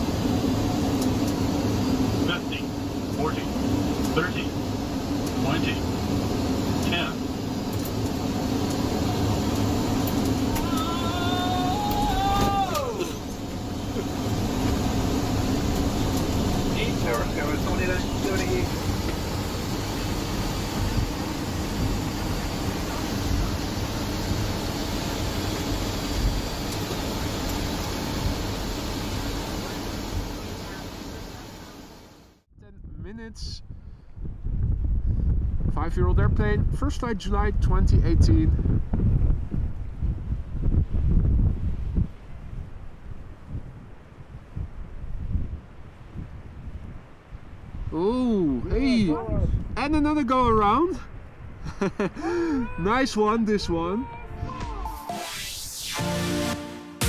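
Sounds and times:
aircraft engines rumbling: 0.0 - 40.6, 50.7 - 54.9
voices: 2.2 - 4.6, 10.4 - 14.4, 16.1 - 18.9, 48.0 - 51.0, 52.2 - 55.0.

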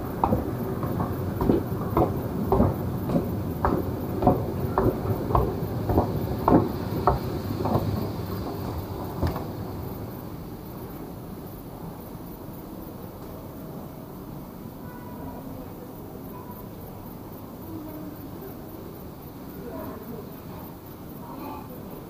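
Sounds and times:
escalator clacks: 0.0 - 11.0
escalator rumble: 0.0 - 11.6.

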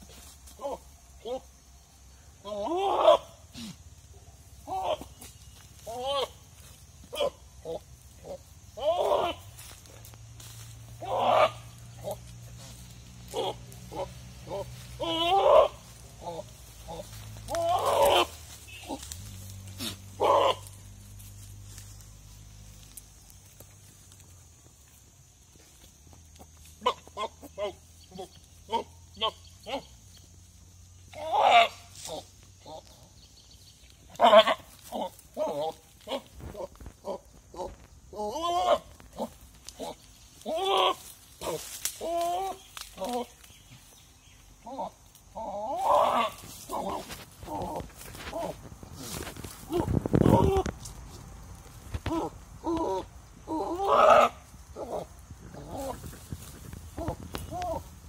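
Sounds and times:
goat bleating: 8.8 - 9.4, 13.3 - 19.1, 52.0 - 56.1.

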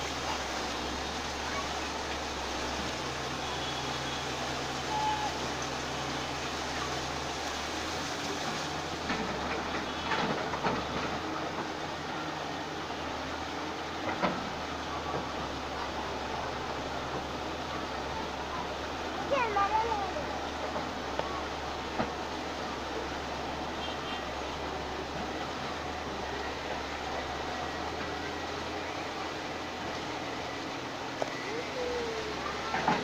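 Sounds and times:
city traffic: 0.0 - 33.0
excavator diesel rumble: 0.0 - 33.0.

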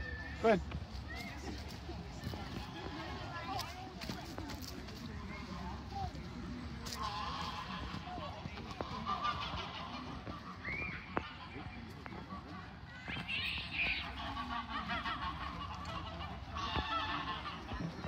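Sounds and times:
geese honking: 6.8 - 12.0, 13.2 - 18.0.

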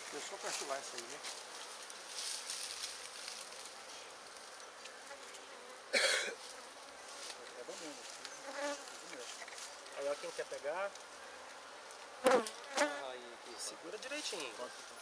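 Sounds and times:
bees buzzing: 0.0 - 15.0.

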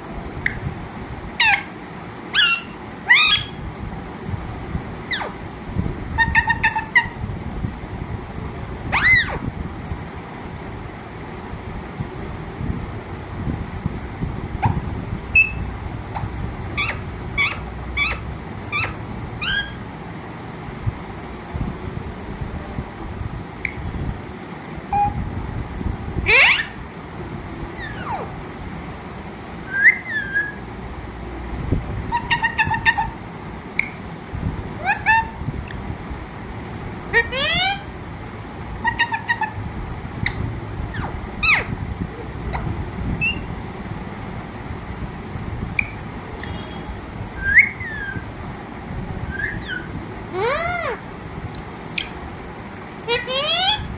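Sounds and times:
parakeet chirps and whistles: 1.4 - 1.7, 2.3 - 3.6, 5.1 - 5.4, 6.2 - 7.2, 8.9 - 9.4, 14.6 - 19.8, 24.9 - 25.2, 26.2 - 26.8, 27.8 - 28.3, 29.6 - 30.6, 32.1 - 34.0, 34.8 - 35.4, 37.1 - 37.9, 38.8 - 39.6, 40.2 - 41.7, 42.5 - 43.5, 45.8 - 48.3, 49.2 - 51.0, 51.9 - 52.2, 53.1 - 53.9.

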